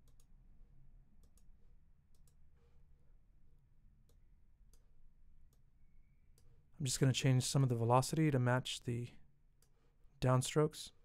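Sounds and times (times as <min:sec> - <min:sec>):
faint computer mouse clicks: 0:00.0 - 0:00.3, 0:01.2 - 0:01.5, 0:02.1 - 0:02.4
man speaking: 0:06.8 - 0:09.2, 0:10.2 - 0:11.0.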